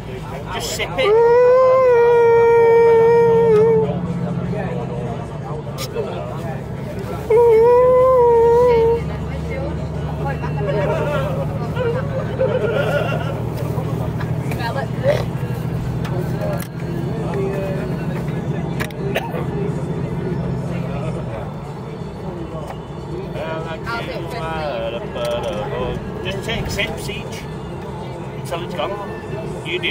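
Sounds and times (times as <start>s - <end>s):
coach engine droning: 0.0s - 29.9s
passengers chattering: 0.0s - 29.9s.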